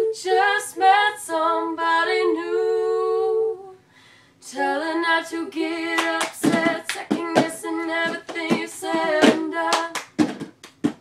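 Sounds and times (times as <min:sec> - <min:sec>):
two voices singing a cappella: 0:00.0 - 0:10.4
hand claps: 0:06.0 - 0:11.0
plastic cups knocked on boxes: 0:06.4 - 0:11.0.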